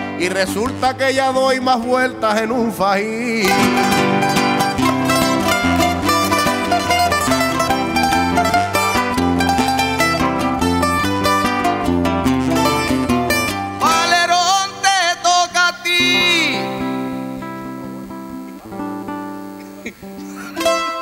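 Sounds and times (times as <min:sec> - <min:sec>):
acoustic guitars strumming and plucking: 0:00.0 - 0:21.0
man singing long wavering note: 0:13.8 - 0:17.8.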